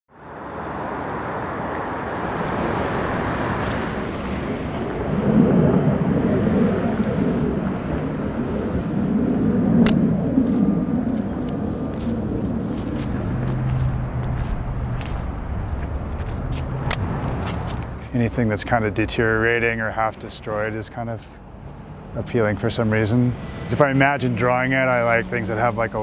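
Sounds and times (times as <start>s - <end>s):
traffic rumble: 0.1s - 26.0s
sharp click: 9.8s - 10.0s.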